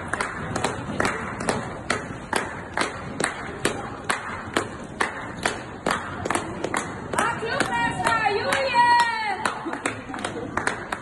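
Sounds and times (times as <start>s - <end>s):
hands clapping: 0.0s - 11.0s.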